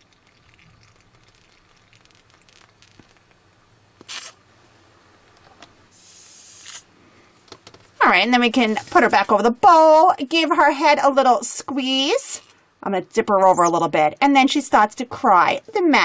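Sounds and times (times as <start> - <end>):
plastic bottle squishing: 1.2 - 3.3, 4.0 - 4.4
short hiss: 4.0 - 4.4, 5.9 - 6.9.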